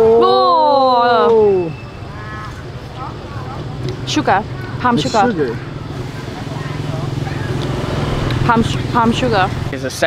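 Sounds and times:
engine humming: 1.3s - 10.0s.

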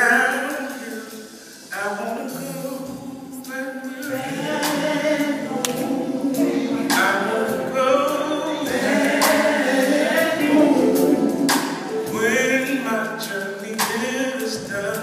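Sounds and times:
male gospel group singing: 0.0s - 15.0s.

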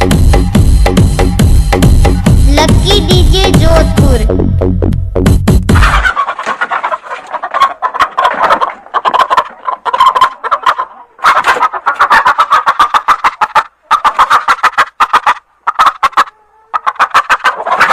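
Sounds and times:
chicken clucking: 5.7s - 17.9s.

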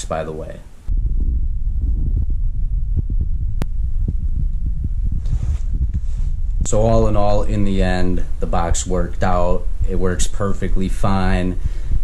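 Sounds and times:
loud steady low rumble: 0.0s - 12.0s.

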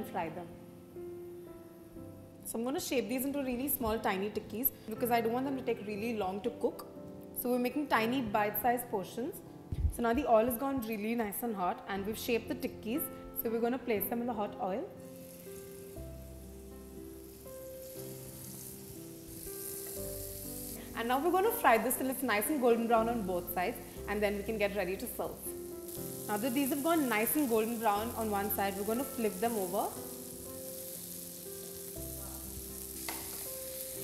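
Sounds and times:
soft background music: 0.0s - 34.0s
food sizzling in hot oil: 15.0s - 34.0s
spatula turning patties: 16.6s - 21.0s.

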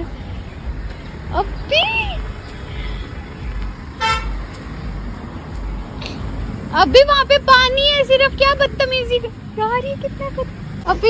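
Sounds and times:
car horn beep: 0.0s - 5.0s
low steady rumble: 0.0s - 11.0s.

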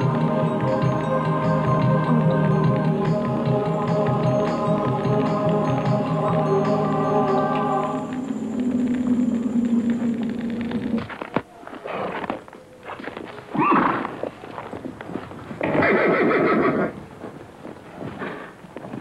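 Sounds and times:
background music: 0.0s - 11.0s
horse whinnying: 13.6s - 14.1s, 15.6s - 17.0s.

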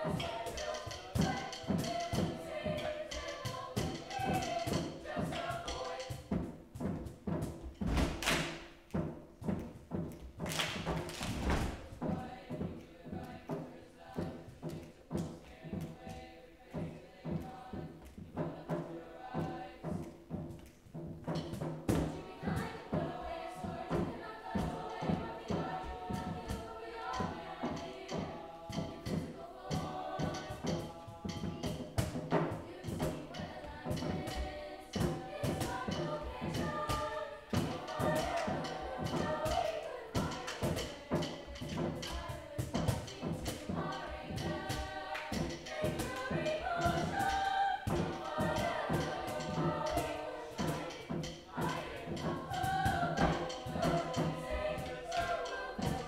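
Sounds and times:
choir singing held chords: 0.0s - 7.6s, 10.8s - 56.0s
steady hand drum beat: 0.0s - 56.0s.

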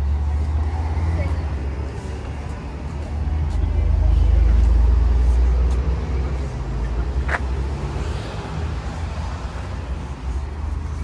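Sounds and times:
passing traffic rumble: 0.0s - 11.0s.

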